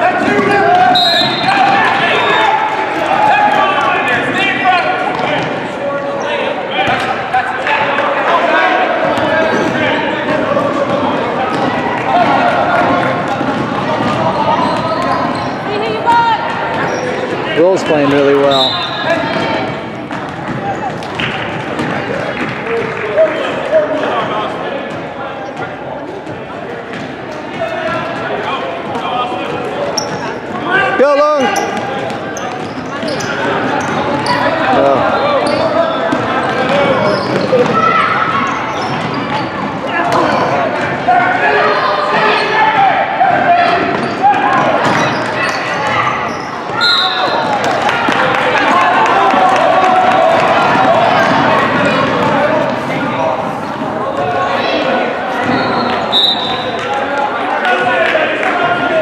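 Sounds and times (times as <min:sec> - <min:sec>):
crowd chatter in gym: 0:00.0 - 0:59.0
referee whistle blasts: 0:00.9 - 0:01.6, 0:18.5 - 0:19.1, 0:46.8 - 0:47.4, 0:55.5 - 0:56.7.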